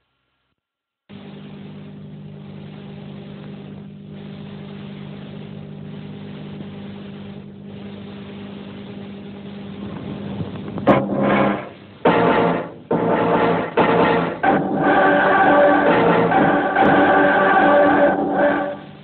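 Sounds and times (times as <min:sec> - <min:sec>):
low humming drone: 0:01.1 - 0:19.0
loud surging sound: 0:10.9 - 0:19.0.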